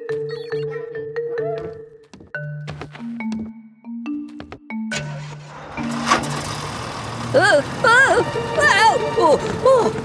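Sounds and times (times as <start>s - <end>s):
excavator rumbling on tracks: 4.9s - 10.0s.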